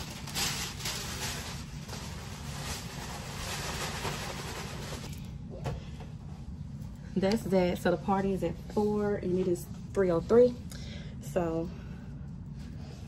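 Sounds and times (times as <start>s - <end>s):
paper rustling and crinkling: 0.0s - 5.1s
steady low hum: 0.0s - 13.0s.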